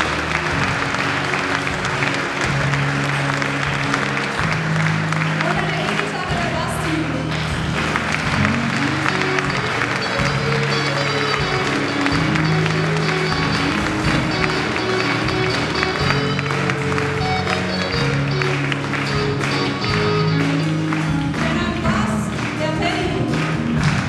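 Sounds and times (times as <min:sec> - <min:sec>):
acoustic guitar: 0:00.0 - 0:24.0
bass guitar: 0:00.0 - 0:24.0
electric guitar: 0:00.0 - 0:24.0
keyboard: 0:00.0 - 0:24.0.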